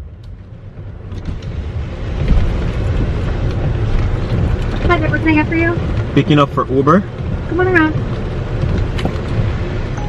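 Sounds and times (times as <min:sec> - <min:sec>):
engine and tyre rumble: 0:00.0 - 0:10.0.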